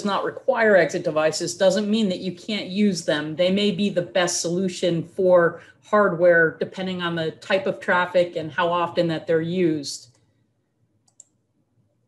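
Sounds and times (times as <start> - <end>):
faint computer clicks: 11.0 - 11.4.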